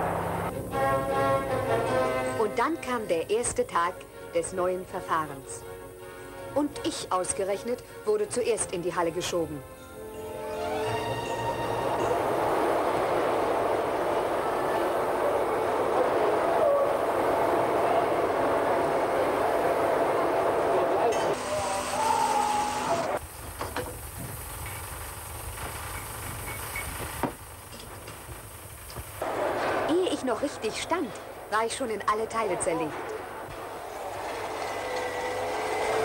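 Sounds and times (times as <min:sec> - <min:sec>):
steam locomotive venting steam: 0:11.6 - 0:31.6, 0:33.1 - 0:36.0.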